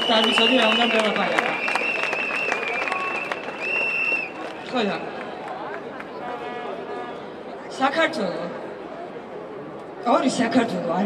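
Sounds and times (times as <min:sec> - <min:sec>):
crowd clapping: 0:00.0 - 0:06.8.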